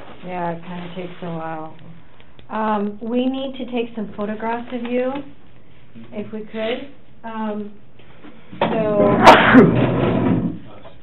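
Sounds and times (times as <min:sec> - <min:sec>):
person coughing: 0:09.2 - 0:09.8.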